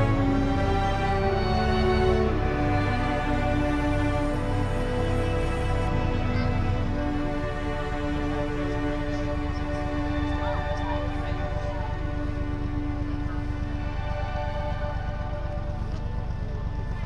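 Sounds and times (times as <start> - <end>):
music with long held notes: 0.0 - 17.0
steady low rumble: 0.0 - 17.0.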